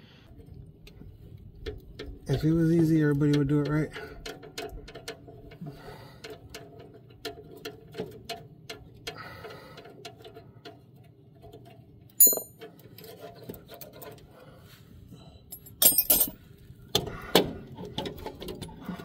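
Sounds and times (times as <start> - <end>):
sharp metallic clink: 12.2 - 12.6.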